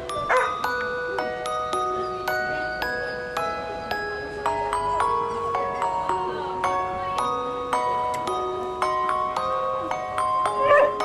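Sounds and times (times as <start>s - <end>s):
bell-like mallet music: 0.0s - 11.0s
dog giving high wavering cry: 0.2s - 0.6s, 10.4s - 11.0s.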